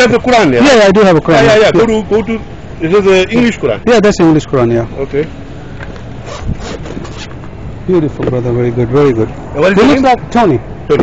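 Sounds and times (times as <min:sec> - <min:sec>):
rustling scrapes of handling: 0:06.0 - 0:07.5.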